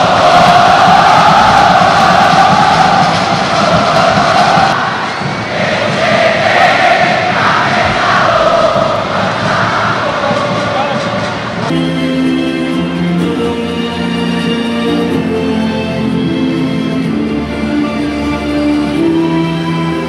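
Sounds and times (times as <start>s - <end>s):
stadium crowd chanting: 0.0s - 11.7s.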